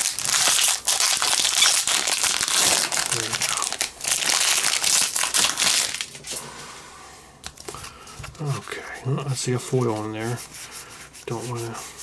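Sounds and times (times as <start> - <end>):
foil wrapper crinkling: 0.0 - 6.3.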